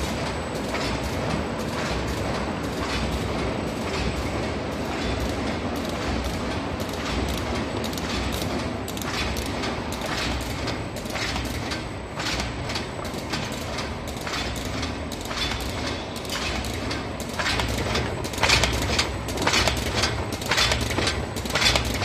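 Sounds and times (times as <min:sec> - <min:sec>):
machine clattering: 0:00.0 - 0:22.0
rapid mechanical clacks: 0:00.0 - 0:22.0.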